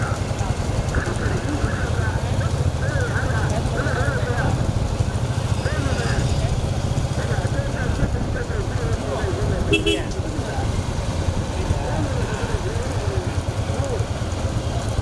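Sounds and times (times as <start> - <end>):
motorcycle engines droning: 0.0 - 15.0.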